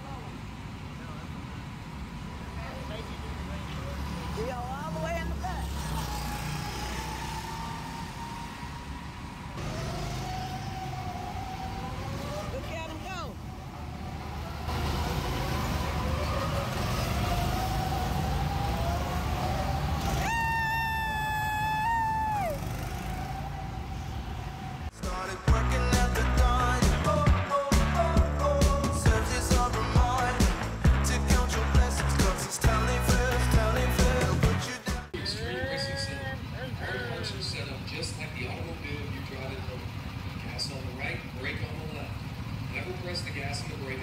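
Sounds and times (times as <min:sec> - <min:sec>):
go-kart engines rumbling: 0:00.0 - 0:24.9, 0:35.1 - 0:44.0
karts revving with whining tones: 0:03.3 - 0:24.9.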